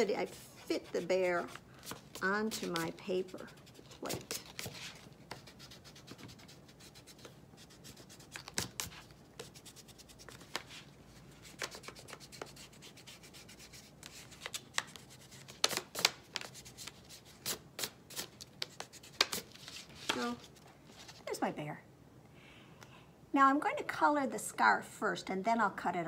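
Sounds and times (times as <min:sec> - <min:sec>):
pencil eraser rubbing on paper: 0:00.1 - 0:10.8, 0:11.4 - 0:15.8.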